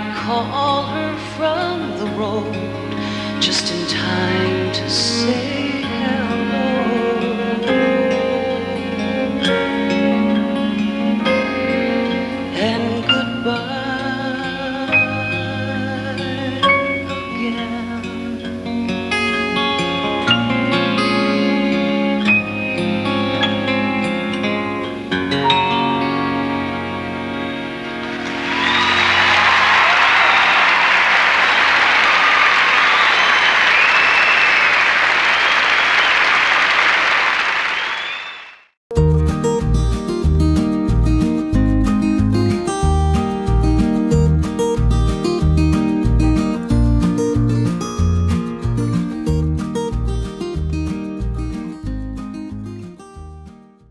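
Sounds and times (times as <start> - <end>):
strummed guitar country track: 0.0 - 30.0, 38.9 - 53.9
live country song with acoustic guitar: 0.0 - 30.6, 39.0 - 53.6
audience applauding: 28.0 - 38.7.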